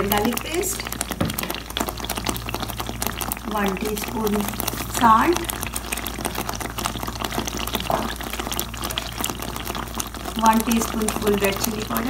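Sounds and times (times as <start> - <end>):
oil sizzling in a pan: 0.0 - 12.0.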